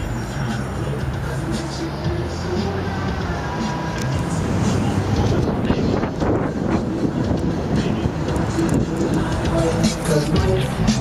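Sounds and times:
car driving road noise: 0:00.0 - 0:11.0
wind noise: 0:04.1 - 0:11.0.

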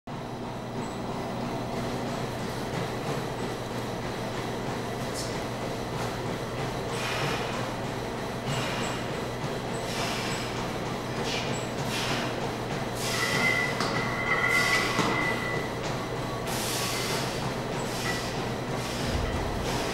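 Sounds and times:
low room drone: 0:00.1 - 0:19.9.

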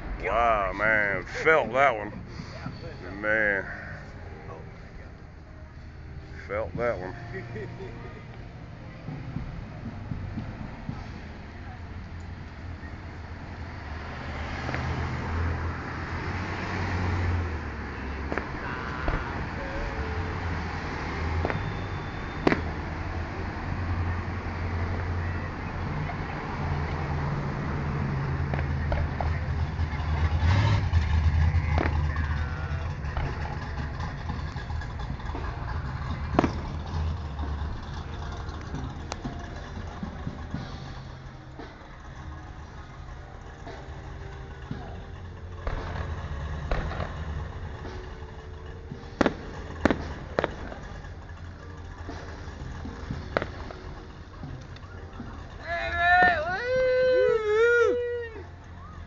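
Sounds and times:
low rumble: 0:03.7 - 0:55.7
fireworks bursting: 0:17.4 - 0:23.4, 0:30.1 - 0:42.8, 0:43.6 - 0:55.6.

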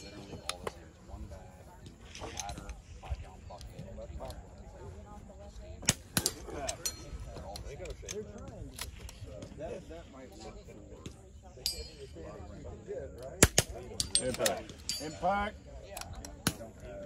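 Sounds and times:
low background voices: 0:00.0 - 0:17.0.

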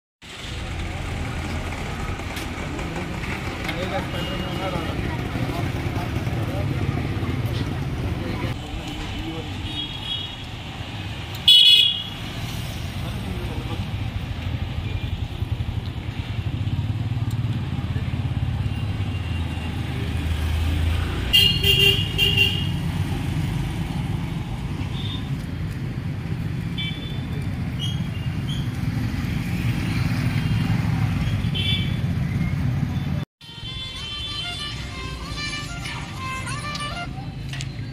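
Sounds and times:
traffic running past: 0:00.2 - 0:37.9
vehicle horn toot: 0:11.5 - 0:12.2, 0:21.3 - 0:22.7, 0:33.4 - 0:37.1.

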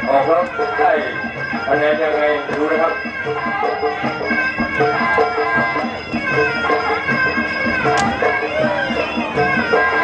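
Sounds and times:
steady drum beat: 0:00.0 - 0:10.0
wailing reed oboe melody: 0:00.0 - 0:10.0.

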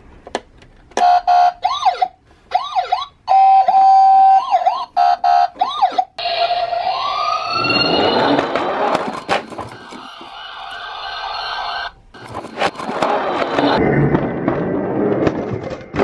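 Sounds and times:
toy electronic siren: 0:01.0 - 0:08.5, 0:09.6 - 0:11.9.

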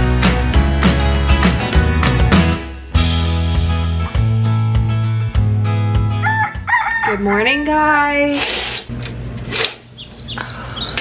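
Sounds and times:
high bird chirps: 0:09.8 - 0:11.0.

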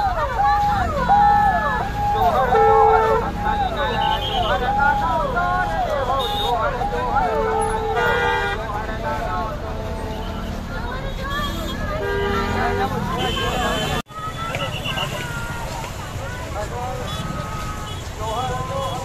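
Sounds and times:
crowd: 0:00.0 - 0:19.0
horns tooting: 0:00.0 - 0:19.0.

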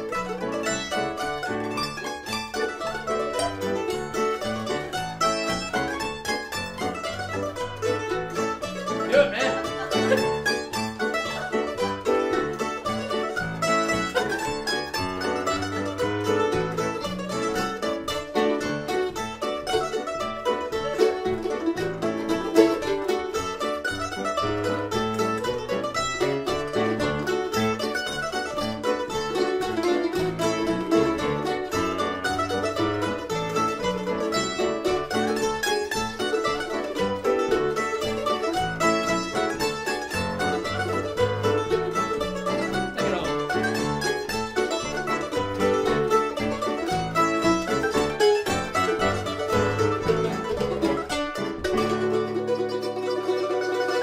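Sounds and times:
mandolins picking a tune: 0:00.0 - 0:54.0.

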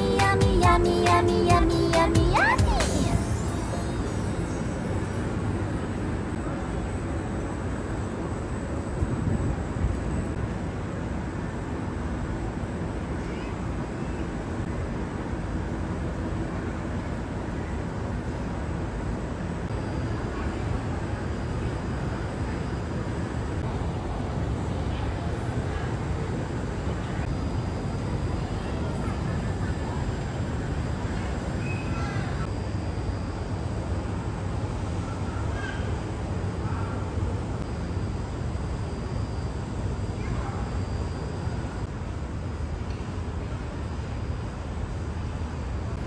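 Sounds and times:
faint indistinct voices: 0:19.7 - 0:32.6, 0:34.4 - 0:46.0.

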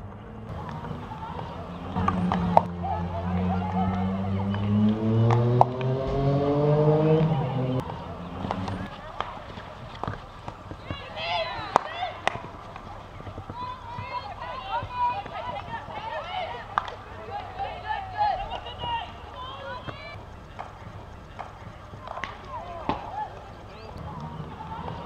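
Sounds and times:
distant players shouting: 0:00.0 - 0:25.0
vehicle engine running: 0:00.0 - 0:25.0
hockey sticks hitting ball: 0:00.1 - 0:17.7, 0:19.6 - 0:25.0.

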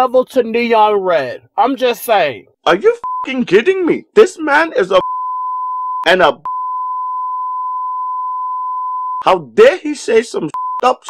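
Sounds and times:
censor bleep tone: 0:03.0 - 0:03.3, 0:05.0 - 0:09.3, 0:10.6 - 0:11.0.

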